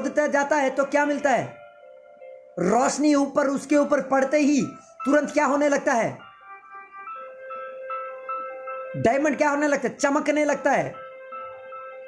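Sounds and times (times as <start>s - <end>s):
bell-like keyboard melody: 0.0s - 12.0s.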